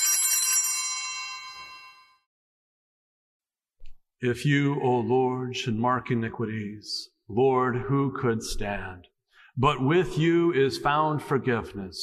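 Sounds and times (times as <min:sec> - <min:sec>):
small bell ringing: 0:00.0 - 0:02.3.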